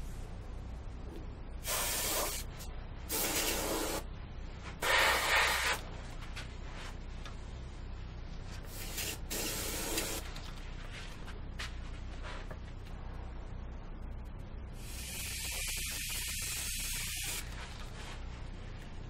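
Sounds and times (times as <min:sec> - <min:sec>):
airbrush spraying hiss: 0:01.6 - 0:04.1, 0:04.8 - 0:05.8, 0:08.7 - 0:10.3, 0:14.8 - 0:18.1.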